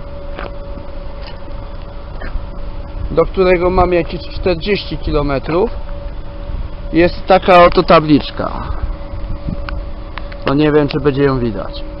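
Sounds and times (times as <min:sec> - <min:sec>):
faint steady hum: 0:00.0 - 0:12.0
wind rumbling on microphone: 0:00.0 - 0:12.0.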